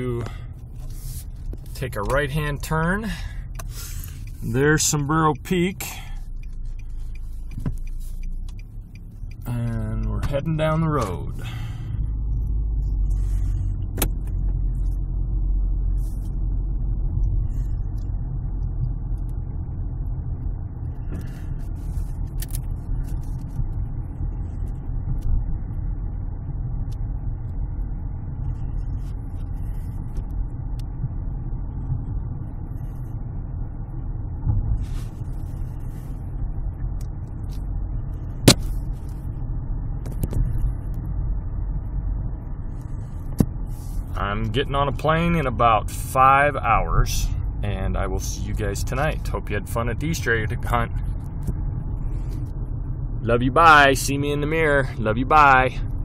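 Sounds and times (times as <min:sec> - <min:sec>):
car driving rumble: 0:00.0 - 0:56.0.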